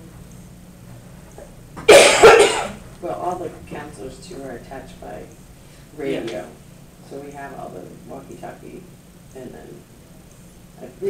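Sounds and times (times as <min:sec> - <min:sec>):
person coughing loudly: 0:01.9 - 0:02.8.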